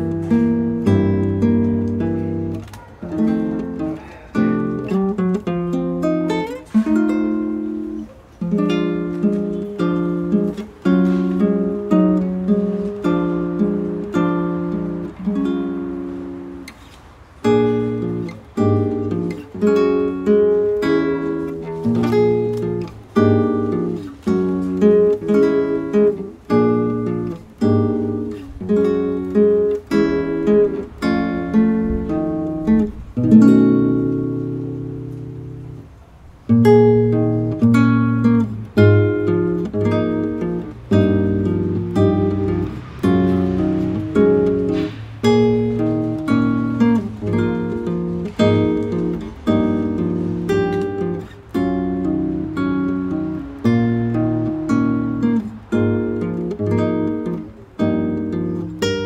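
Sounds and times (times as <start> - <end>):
fingerstyle classical guitar: 0.0 - 59.0.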